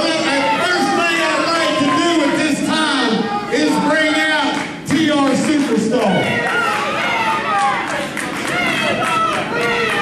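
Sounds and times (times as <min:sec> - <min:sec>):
crowd shouting and talking: 0:00.0 - 0:10.0.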